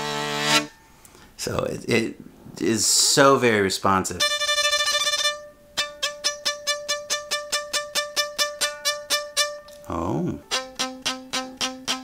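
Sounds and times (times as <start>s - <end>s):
resonating strings: 4.2s - 10.6s
electric violin bowed strokes: 4.2s - 12.0s
held bowed violin note: 4.2s - 12.0s.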